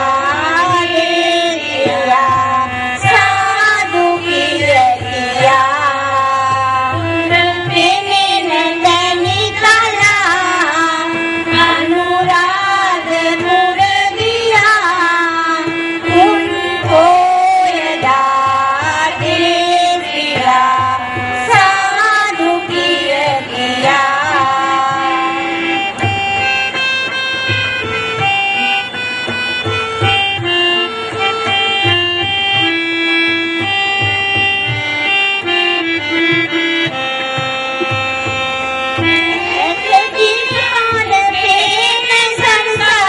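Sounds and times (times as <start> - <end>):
choir singing devotional song: 0.0 - 25.8, 39.2 - 43.0
drum beats: 0.0 - 43.0
reedy keyboard melody: 0.0 - 43.0.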